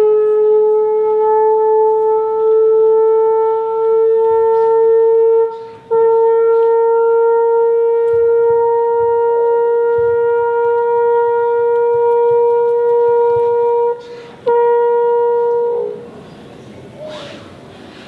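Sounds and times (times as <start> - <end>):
trombone long note: 0.0 - 16.2.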